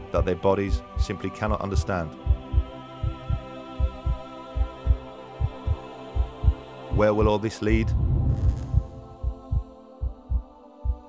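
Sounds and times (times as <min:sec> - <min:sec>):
heartbeat: 0:00.2 - 0:11.0
ambient drone: 0:07.7 - 0:10.0.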